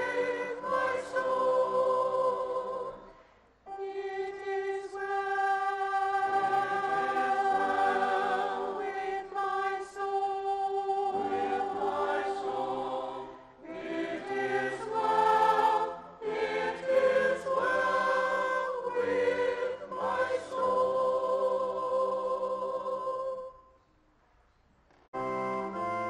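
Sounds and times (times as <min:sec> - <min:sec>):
church choir singing: 0:00.0 - 0:23.6.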